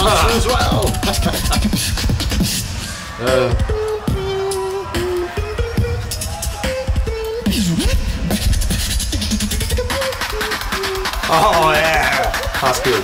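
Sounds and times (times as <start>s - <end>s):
beatboxing: 0.0s - 2.8s, 3.4s - 13.0s.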